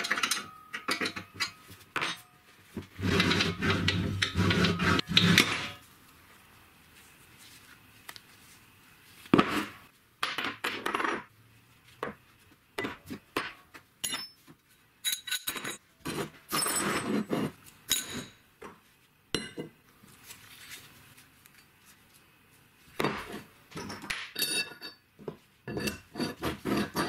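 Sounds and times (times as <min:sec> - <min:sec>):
metal parts clinking on workbench: 0:00.0 - 0:02.3, 0:15.0 - 0:15.8
metal pieces scraping on wood: 0:03.0 - 0:05.8, 0:25.7 - 0:27.0.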